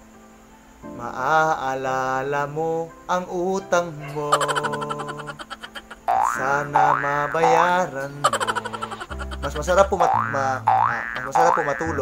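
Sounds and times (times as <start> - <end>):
man singing long note: 6.2 - 8.3.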